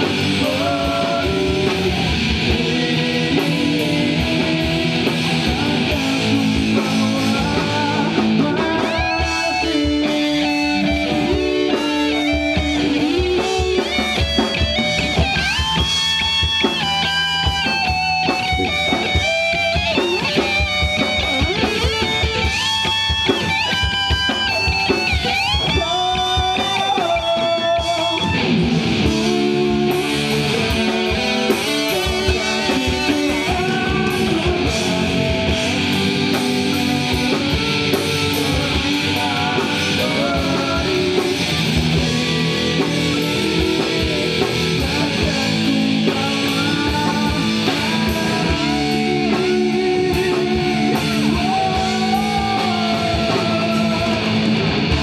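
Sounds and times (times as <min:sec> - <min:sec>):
drums: 0:00.0 - 0:55.0
electric guitar lead: 0:00.0 - 0:55.0.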